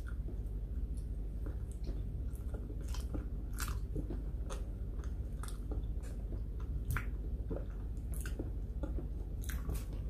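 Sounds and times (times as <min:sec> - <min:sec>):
chewing soft food: 0:00.0 - 0:10.0
low steady hum: 0:00.0 - 0:10.0.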